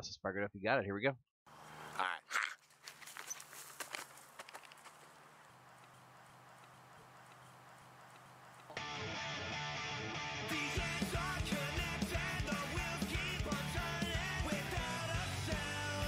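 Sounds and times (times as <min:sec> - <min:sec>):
person speaking: 0:01.7 - 0:02.6
punk rock band playing: 0:08.8 - 0:16.0.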